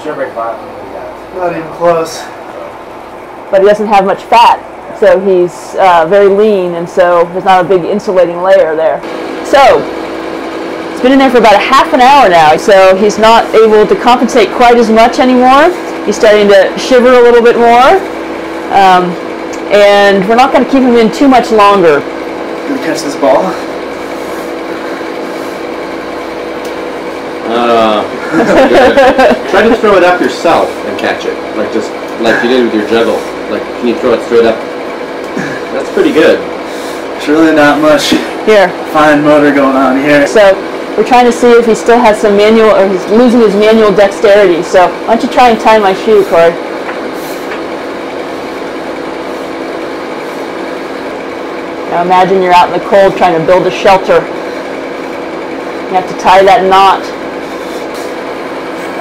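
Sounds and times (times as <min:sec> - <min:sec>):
pump humming: 0:00.0 - 0:59.0.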